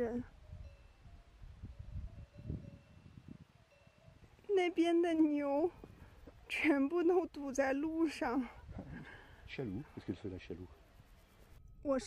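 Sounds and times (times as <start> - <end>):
wind buffeting microphone: 0.2 - 4.4, 7.9 - 9.2.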